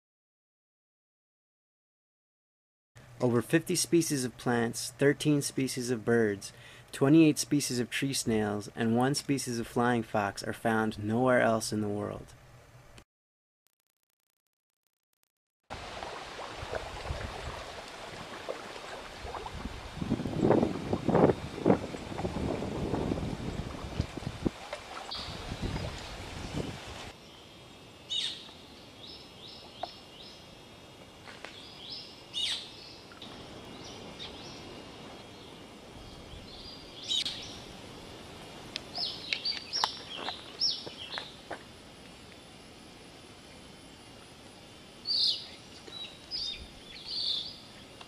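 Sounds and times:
forest background: 3.0 - 12.6, 15.7 - 48.0
rushing outdoor noise: 15.7 - 29.4
flying fox squeaking calls: 32.4 - 32.7.

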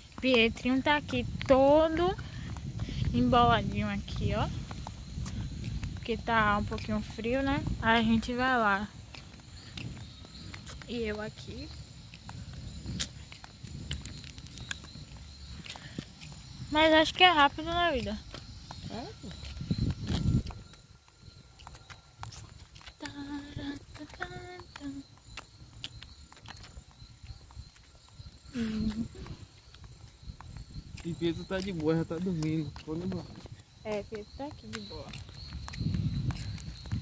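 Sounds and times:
footsteps on road: 0.0 - 37.0
wind rumble on microphone: 0.0 - 37.0.

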